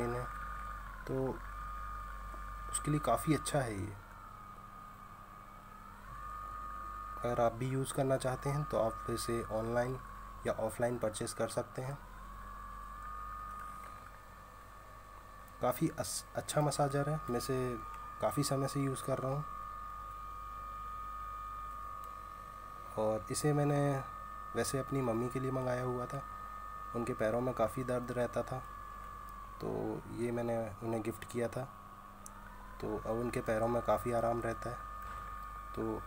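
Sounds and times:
massager motor whining: 0.0s - 36.0s.

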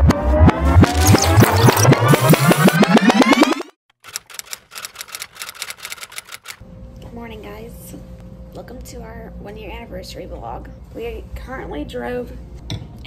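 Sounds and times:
rising pitched tone with ticks: 0.0s - 3.7s
rapid clicks: 1.1s - 6.6s.

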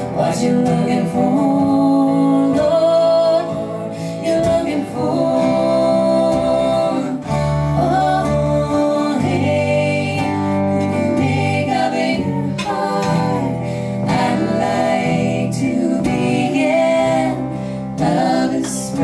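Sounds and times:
acoustic guitar: 0.0s - 19.0s
slide dobro: 0.0s - 19.0s.

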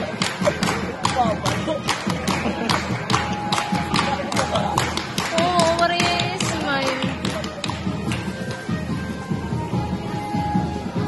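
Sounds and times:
loud drum-heavy dance music: 0.0s - 8.2s.

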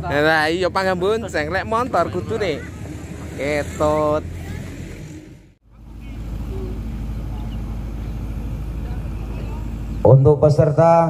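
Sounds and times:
steady low rumble: 0.0s - 11.0s
steady low hum: 2.6s - 11.0s.

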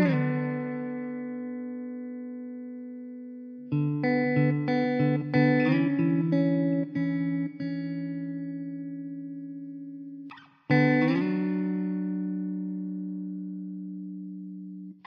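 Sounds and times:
plucked guitar music: 0.0s - 15.0s.

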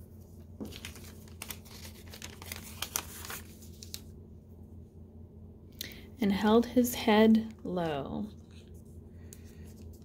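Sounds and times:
paper being folded and creased: 0.6s - 4.1s.

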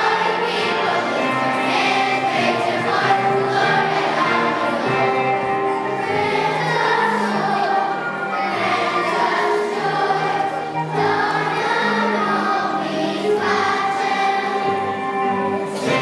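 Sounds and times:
children's choir singing: 0.0s - 16.0s
low held accompaniment notes: 0.0s - 16.0s.

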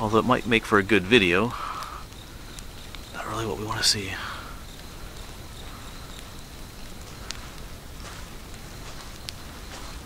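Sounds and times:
night insects trilling: 0.0s - 10.0s
faint ticks: 0.2s - 10.0s.

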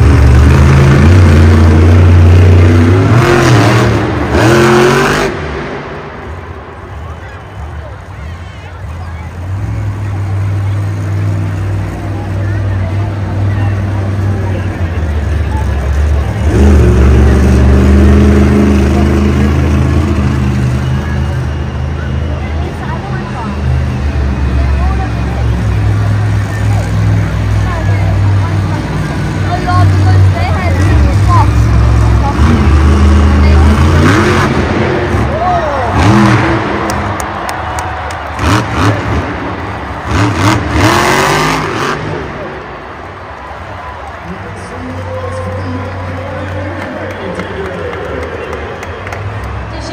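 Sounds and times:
monster truck engine revving: 0.0s - 49.9s.

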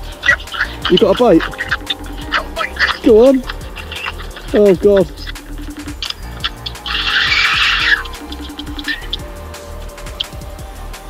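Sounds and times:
fishing reel clutch buzzing: 0.0s - 11.0s.

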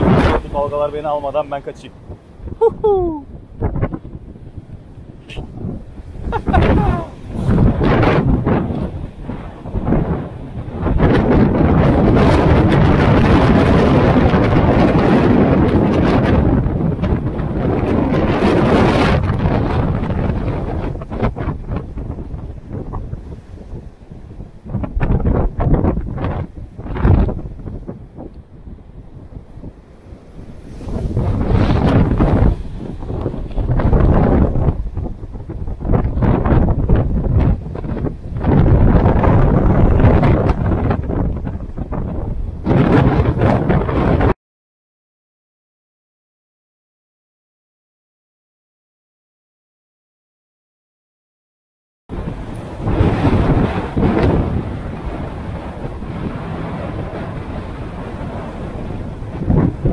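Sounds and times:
gusty wind buffeting microphone: 0.0s - 44.4s, 52.1s - 59.9s
heavy surf breaking on rocks: 0.0s - 44.4s, 52.1s - 59.9s.

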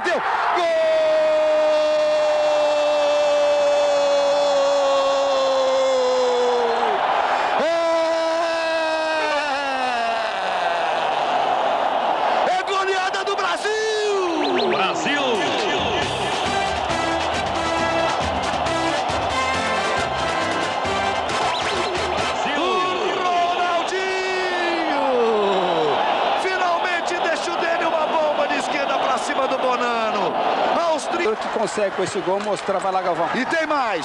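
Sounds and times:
stadium crowd noise: 0.0s - 34.0s
commentator shouting goal: 12.4s - 16.6s, 22.1s - 34.0s
music with steady beat: 16.0s - 22.4s.

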